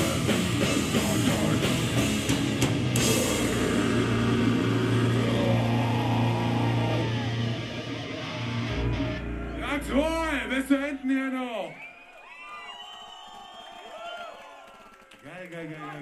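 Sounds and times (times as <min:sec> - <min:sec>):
metal band playing: 0:00.0 - 0:10.9.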